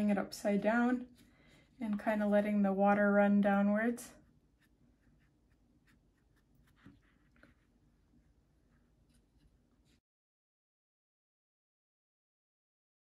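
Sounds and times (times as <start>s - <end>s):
paintbrush scratching on paper: 4.2s - 10.0s.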